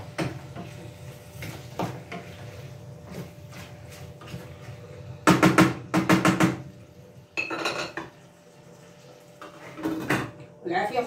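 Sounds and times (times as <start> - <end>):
wooden spoon stirring in metal pot: 0.0 - 10.1
metallic kitchenware clatter: 7.4 - 8.1.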